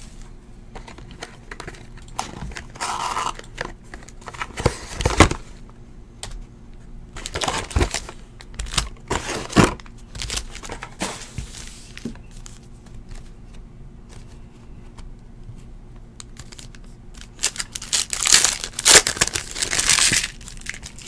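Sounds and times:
foil packs crinkling: 0:07.2 - 0:11.0, 0:16.2 - 0:21.0.

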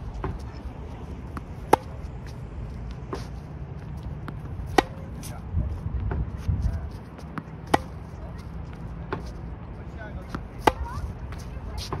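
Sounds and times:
tennis balls bouncing on hard court: 0:00.1 - 0:05.3, 0:07.0 - 0:09.4, 0:10.1 - 0:12.0
tennis balls hit with racket: 0:00.1 - 0:09.4, 0:10.0 - 0:12.0.

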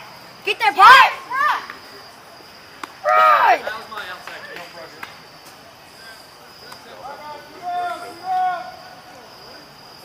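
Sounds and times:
person shouting: 0:03.0 - 0:03.6.

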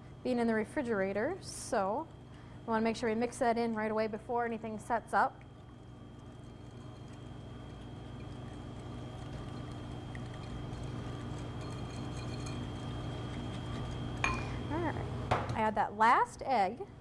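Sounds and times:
whisk beating batter in bowl: 0:06.2 - 0:14.2.

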